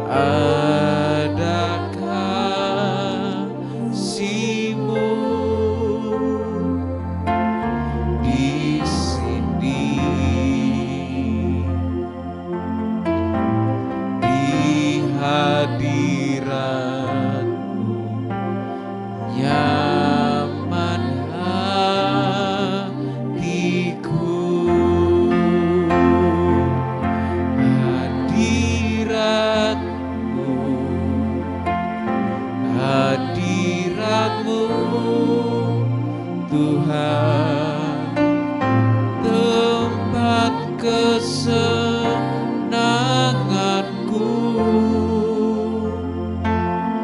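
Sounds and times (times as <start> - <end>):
sustained keyboard chords: 0.0 - 47.0
voices singing worship song: 0.0 - 47.0.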